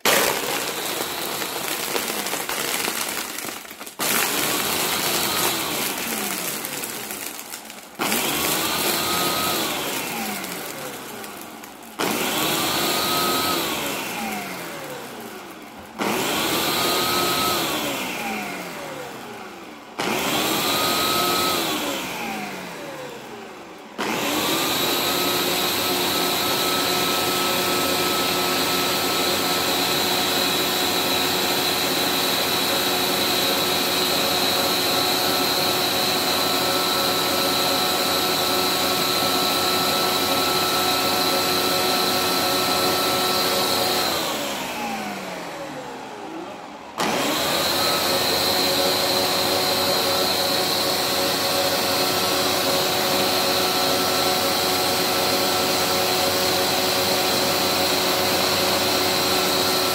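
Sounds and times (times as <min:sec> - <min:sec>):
blender motor running: 0:00.0 - 0:59.9.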